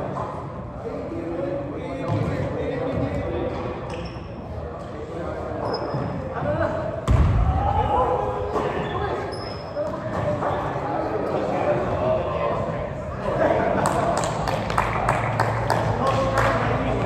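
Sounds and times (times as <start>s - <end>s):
overlapping talk in echoing gym: 0.0s - 17.0s
loud thud: 7.0s - 7.7s.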